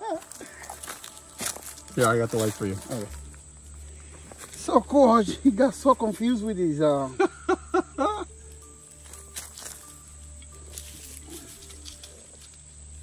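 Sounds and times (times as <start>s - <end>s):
low steady hum: 0.0s - 13.0s
soft background music: 0.0s - 13.0s
man laughing: 7.0s - 8.4s.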